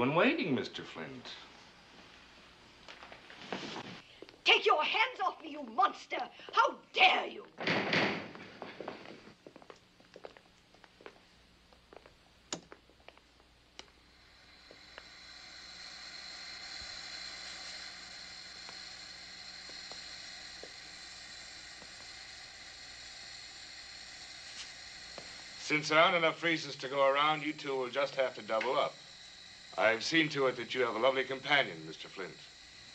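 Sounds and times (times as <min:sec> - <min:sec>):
freezers hissing and humming: 0:13.6 - 0:32.9.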